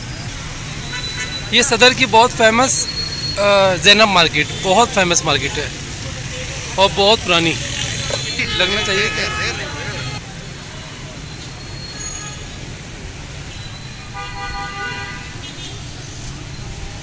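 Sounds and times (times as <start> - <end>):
traffic rumble: 0.0 - 17.0
vehicle horn: 8.1 - 10.2, 14.0 - 15.7.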